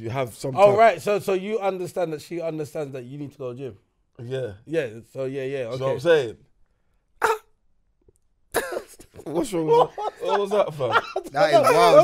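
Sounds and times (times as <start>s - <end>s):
man coughing: 7.2s - 7.6s, 8.5s - 9.4s.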